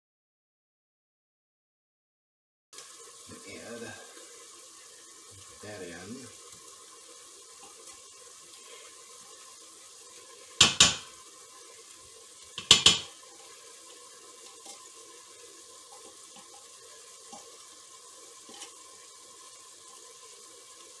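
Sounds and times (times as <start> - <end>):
faint steady hiss: 2.8 - 21.0
spatula knocking metal pot: 10.6 - 11.1, 12.5 - 13.1.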